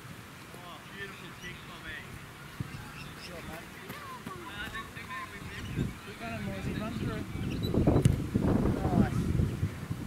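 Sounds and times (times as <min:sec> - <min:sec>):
birds chirping and squawking: 0:01.2 - 0:03.9, 0:04.6 - 0:08.0
wind rumble on microphone: 0:05.3 - 0:10.0.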